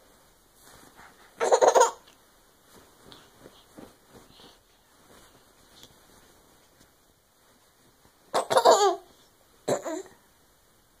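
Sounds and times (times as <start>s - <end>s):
baby giggling: 1.4s - 2.1s, 8.4s - 9.1s.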